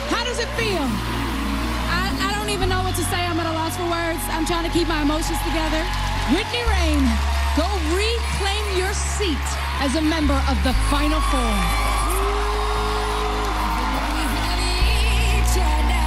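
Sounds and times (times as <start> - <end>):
backing music: 0.0 - 16.0
deep bass drone: 0.0 - 16.0
woman singing: 8.3 - 16.0.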